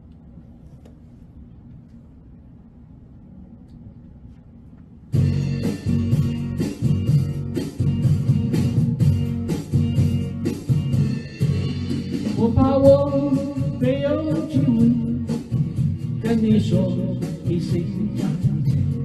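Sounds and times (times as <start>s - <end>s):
pop backing track with beat: 5.2s - 19.0s
person singing: 12.3s - 15.5s, 16.2s - 19.0s.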